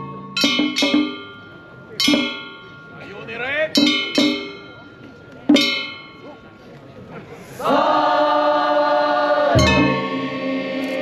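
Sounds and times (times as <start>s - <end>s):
hand-held metal gong ringing: 0.0s - 6.3s.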